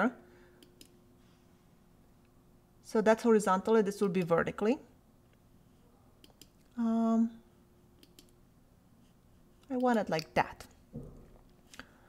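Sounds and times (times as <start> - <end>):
faint room hum: 0.0 - 12.0
computer mouse clicks: 0.6 - 1.0, 6.2 - 6.7, 8.0 - 8.4.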